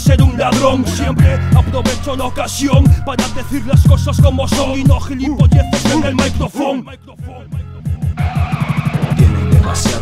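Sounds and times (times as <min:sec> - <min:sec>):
hip hop beat: 0:00.0 - 0:10.0
turntable scratching: 0:03.2 - 0:06.4, 0:07.2 - 0:10.0.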